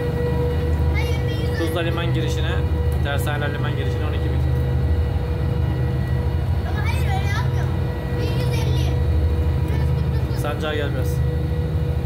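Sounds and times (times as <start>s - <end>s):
boat diesel engines droning: 0.0s - 12.0s.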